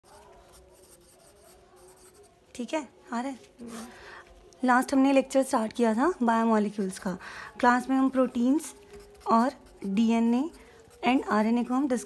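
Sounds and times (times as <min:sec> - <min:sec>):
pen scratching on paper: 0:00.0 - 0:02.4, 0:06.0 - 0:12.0.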